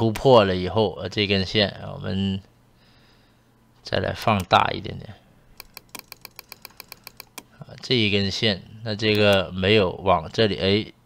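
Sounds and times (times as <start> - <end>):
computer mouse clicks: 5.6 - 7.5.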